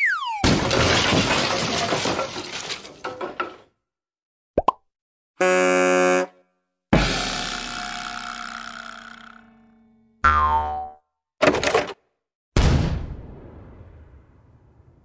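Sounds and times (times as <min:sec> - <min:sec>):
struck ringing note: 0:07.0 - 0:10.2.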